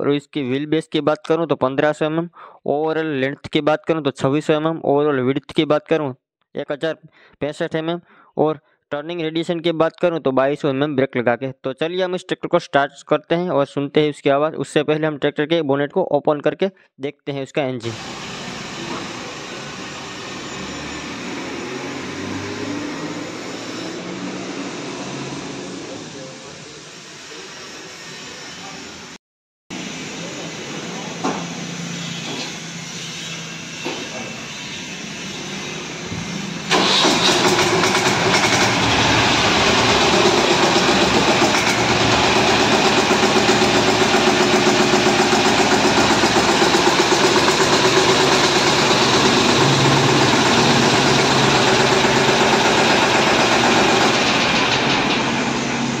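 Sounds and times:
diesel tractor engine idling: 36.7 - 56.0.

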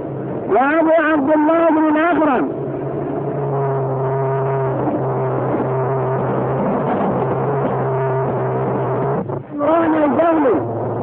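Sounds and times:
low machine drone: 0.0 - 11.0.

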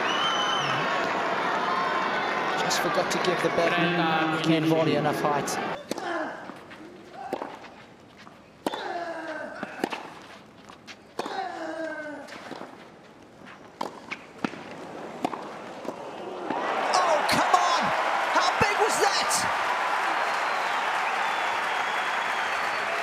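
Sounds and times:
crowd cheering and applauding: 0.0 - 3.9, 16.2 - 23.0
tennis ball bouncing: 7.2 - 7.7, 8.6 - 10.2, 10.8 - 11.4, 13.8 - 16.6
racket striking tennis ball: 7.3 - 7.7, 8.6 - 9.0, 9.6 - 10.2, 11.2 - 11.4, 13.8 - 16.6.

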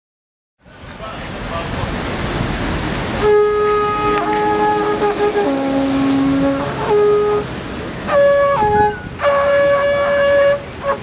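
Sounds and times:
street traffic noise: 0.6 - 11.0
wind instruments playing long notes: 3.1 - 11.0.

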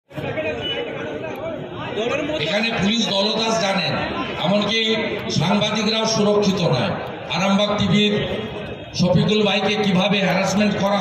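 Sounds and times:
chatter of voices: 0.1 - 11.0
man talking into microphone: 0.2 - 11.0.

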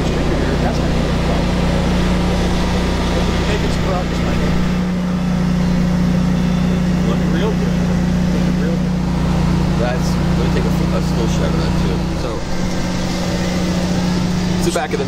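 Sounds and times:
engine droning steadily: 0.0 - 15.0.

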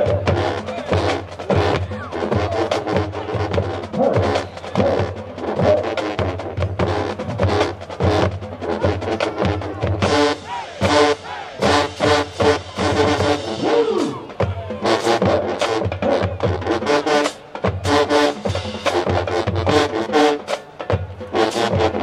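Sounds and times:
drums keeping a steady beat: 0.0 - 22.0
marching band playing: 0.0 - 22.0.

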